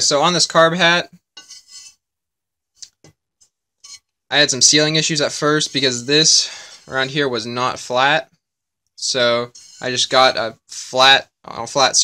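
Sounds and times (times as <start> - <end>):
light metallic rubbing: 1.4 - 2.0, 3.8 - 7.4, 9.3 - 10.2.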